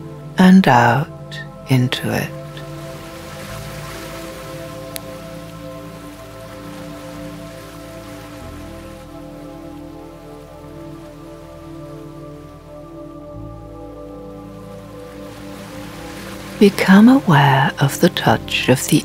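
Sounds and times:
ambient meditation music: 0:00.0 - 0:19.0
surf washing in: 0:01.7 - 0:12.9, 0:13.8 - 0:19.0.

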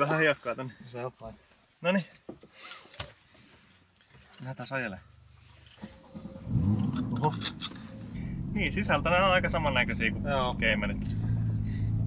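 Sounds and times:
car engine idling and revving: 0:05.8 - 0:12.0.

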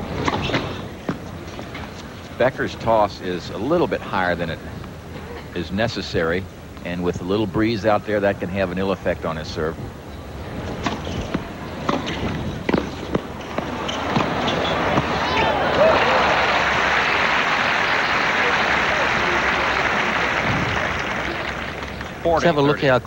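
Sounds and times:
tennis ball racquet strikes: 0:10.7 - 0:15.5
crowd applause and cheering: 0:13.6 - 0:22.8.

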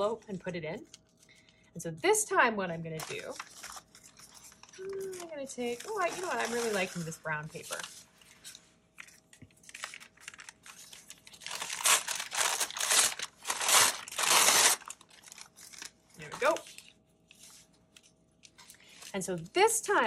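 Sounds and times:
paper crumpling and tearing: 0:03.0 - 0:19.1.

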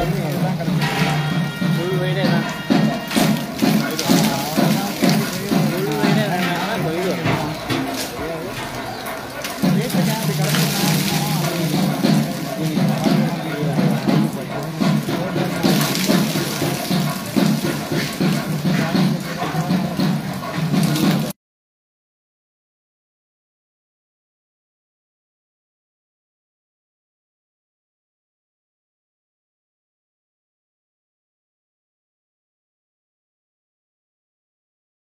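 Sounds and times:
music: 0:00.0 - 0:21.4
liquid pouring onto stone: 0:01.7 - 0:21.3.

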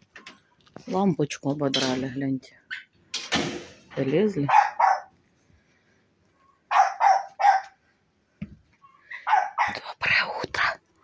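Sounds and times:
animal barking calls: 0:04.5 - 0:05.2, 0:06.6 - 0:07.8, 0:08.8 - 0:09.8.

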